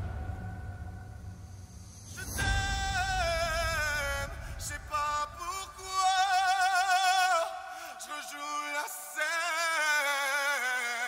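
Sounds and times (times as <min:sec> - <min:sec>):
low rumble: 0:00.0 - 0:06.6
man singing with vibrato: 0:02.2 - 0:11.0.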